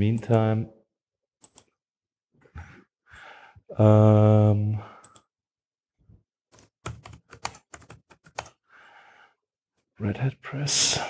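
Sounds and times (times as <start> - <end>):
typing on computer keyboard: 6.5 - 8.6.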